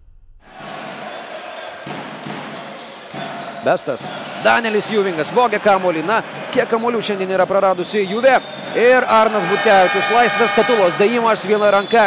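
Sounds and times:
arena crowd noise: 0.5s - 12.0s.

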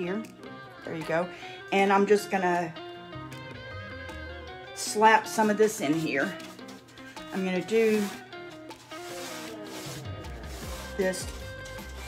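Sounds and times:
background music: 0.0s - 12.0s
brush rubbing on wood: 5.3s - 12.0s.

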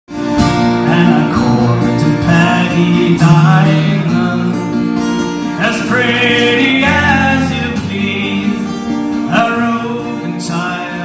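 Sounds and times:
two acoustic guitars playing folk: 0.1s - 11.0s.

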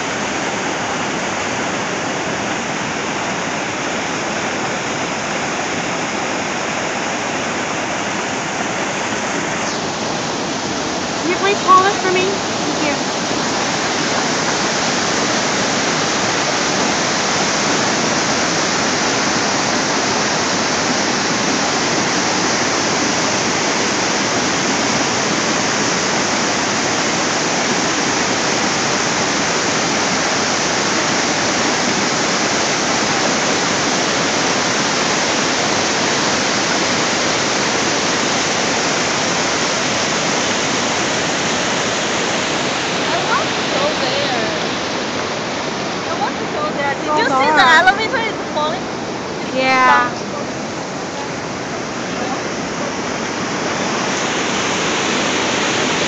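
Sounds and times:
rush of falling water: 0.0s - 56.0s.

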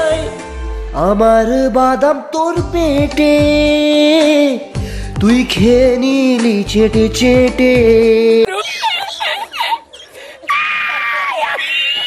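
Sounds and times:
man laughing hysterically: 8.5s - 12.0s.

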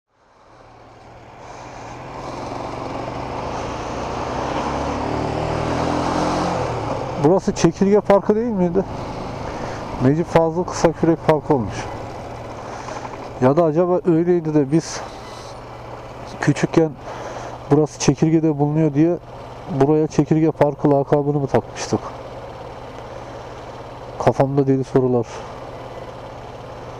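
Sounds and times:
motorcycle engine running: 0.1s - 26.9s
road noise: 0.1s - 26.9s.

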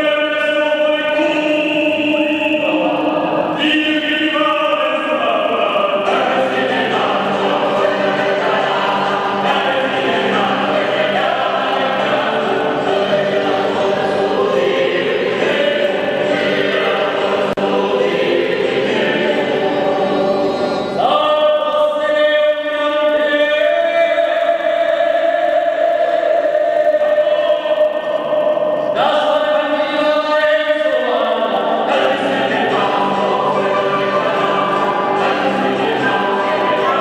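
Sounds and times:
choir singing: 0.0s - 37.0s.

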